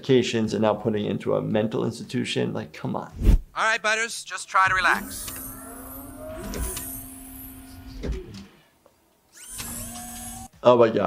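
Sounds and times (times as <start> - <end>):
electric motor whirring: 4.6 - 8.6, 9.3 - 10.6.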